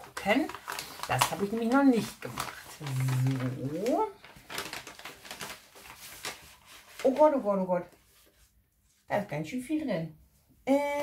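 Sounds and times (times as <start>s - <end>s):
paper envelope crinkling: 0.0s - 8.4s.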